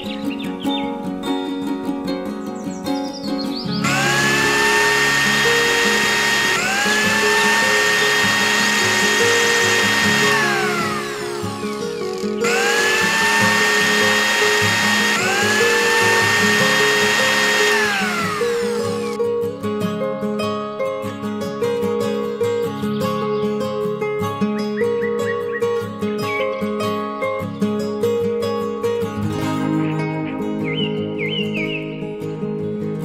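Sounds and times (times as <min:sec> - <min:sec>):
small blender motor whining: 0:03.8 - 0:19.2.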